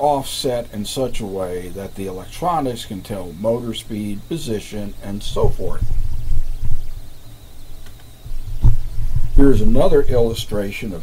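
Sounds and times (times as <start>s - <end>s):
low electrical hum: 0.0s - 11.0s
low rumbling: 1.0s - 10.6s.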